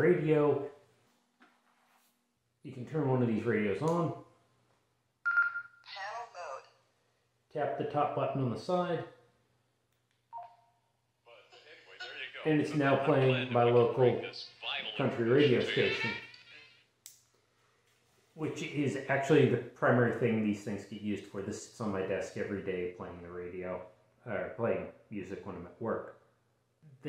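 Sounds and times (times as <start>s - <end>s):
short radio sound: 11.3s - 16.7s.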